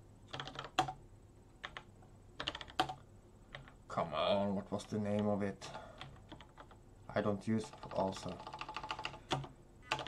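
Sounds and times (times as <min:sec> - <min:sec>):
typing on computer keyboard: 0:00.3 - 0:01.0, 0:01.6 - 0:03.8, 0:06.0 - 0:06.8, 0:07.6 - 0:10.0.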